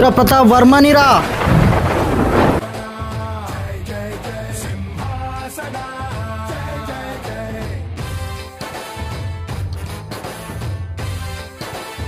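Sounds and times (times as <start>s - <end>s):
thunder crash: 0.8s - 2.6s.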